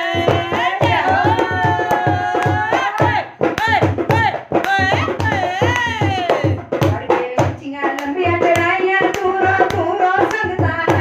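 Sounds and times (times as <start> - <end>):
hand drum: 0.0 - 11.0
woman singing: 0.0 - 11.0
hand claps: 7.9 - 11.0.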